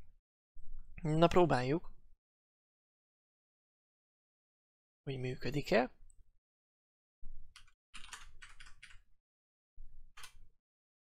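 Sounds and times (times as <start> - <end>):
typing on computer keyboard: 7.5 - 9.1, 10.2 - 10.4.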